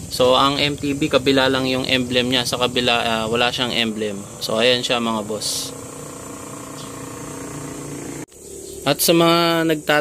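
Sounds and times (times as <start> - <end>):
machine hum: 0.0 - 9.1.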